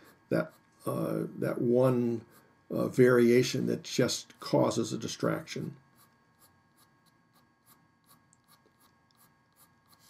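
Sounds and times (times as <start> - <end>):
pencil scratching on paper: 0.0 - 0.8, 2.1 - 2.6, 5.8 - 10.0.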